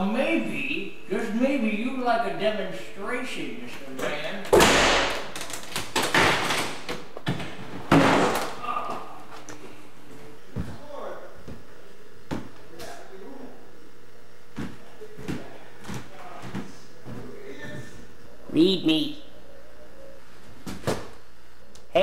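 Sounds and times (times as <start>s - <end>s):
heavy door bangs: 4.5s - 5.4s
footsteps on wooden floor: 14.5s - 17.9s.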